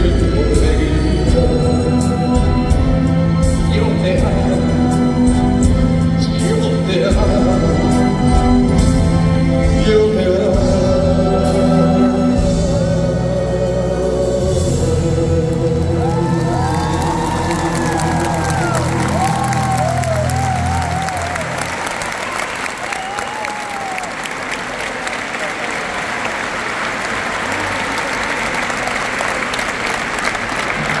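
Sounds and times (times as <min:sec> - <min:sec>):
crowd applause: 0:15.6 - 0:31.0
audience calling out: 0:16.0 - 0:31.0.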